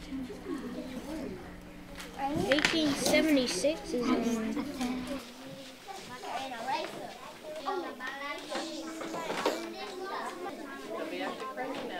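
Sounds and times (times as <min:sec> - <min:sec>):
children talking: 0:00.0 - 0:11.9.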